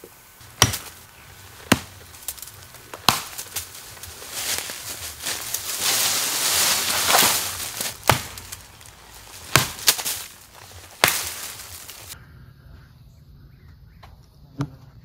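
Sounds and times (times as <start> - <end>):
leaves and branches rustling: 0.0 - 12.2
axe chopping wood: 0.4 - 5.8, 6.8 - 12.1.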